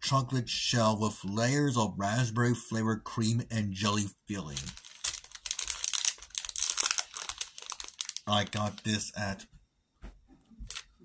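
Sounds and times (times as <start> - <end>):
candy wrapper crinkling: 4.4 - 9.2, 10.6 - 10.9.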